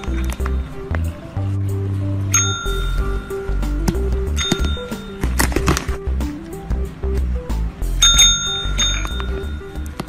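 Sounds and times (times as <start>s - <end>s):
background music: 0.0s - 10.0s
service bell ringing: 2.3s - 3.7s, 4.3s - 5.2s, 8.0s - 10.0s.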